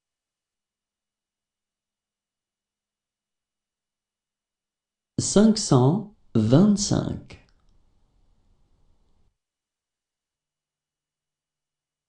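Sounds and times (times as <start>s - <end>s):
person speaking: 5.2s - 7.5s.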